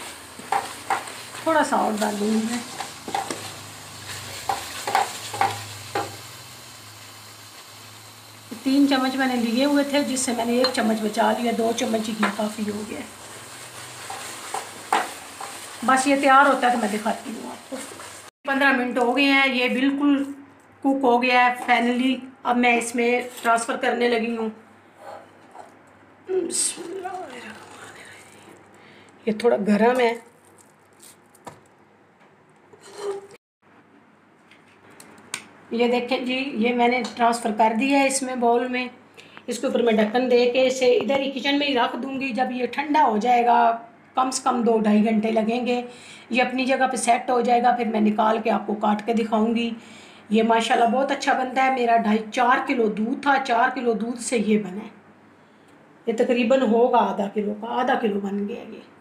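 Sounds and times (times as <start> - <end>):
wooden spatula scraping metal pot: 0.0 - 6.2, 13.8 - 18.2, 32.7 - 33.4
low steady hiss from pot: 0.0 - 19.7, 26.3 - 30.1
spatula scraping steel pan: 32.8 - 33.4.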